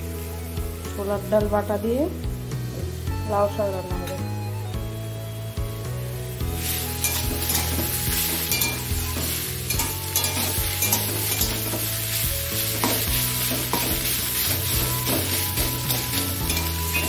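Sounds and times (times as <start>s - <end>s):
food sizzling in a pan: 0.0s - 17.0s
spatula scraping and tapping pan: 7.0s - 17.0s.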